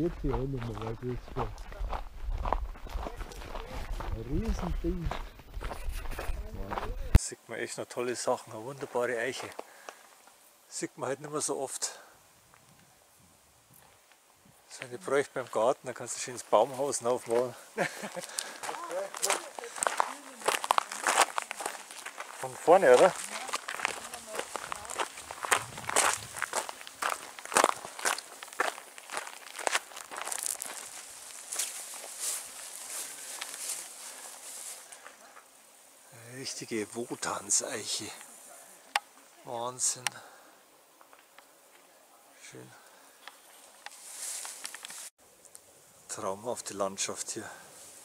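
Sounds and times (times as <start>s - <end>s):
footsteps crunching on gravel: 0.0s - 7.2s, 8.8s - 10.2s, 16.3s - 35.2s, 43.9s - 45.1s.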